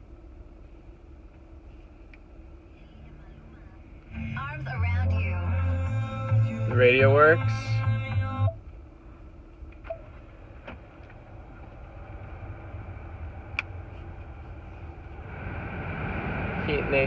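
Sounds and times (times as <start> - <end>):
blower fan hissing: 0.0 - 7.9, 8.6 - 17.0
car engine idling hum: 0.0 - 17.0.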